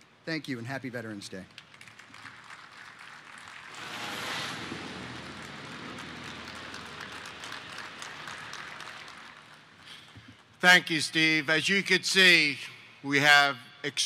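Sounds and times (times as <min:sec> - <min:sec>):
audience applauding: 0:01.6 - 0:10.1.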